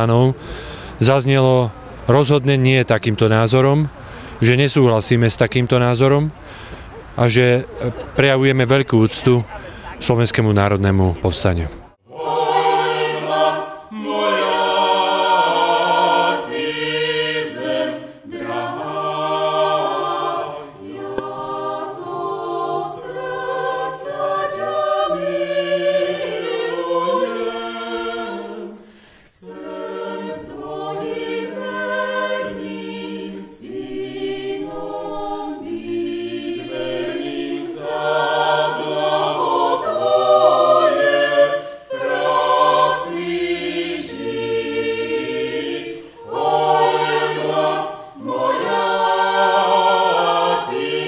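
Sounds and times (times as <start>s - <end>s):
choir singing unaccompanied: 10.1s - 51.0s.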